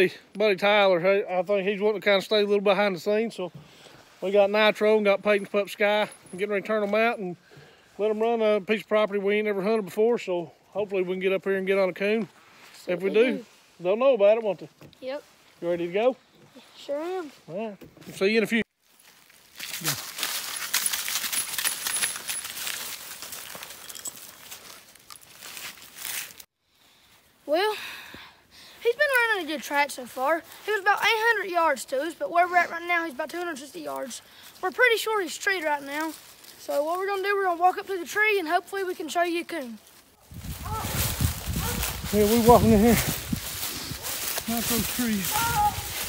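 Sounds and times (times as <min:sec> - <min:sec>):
dogs running through dry leaves: 0:18.8 - 0:26.4, 0:39.8 - 0:46.0
person talking: 0:41.6 - 0:43.2, 0:44.4 - 0:46.0.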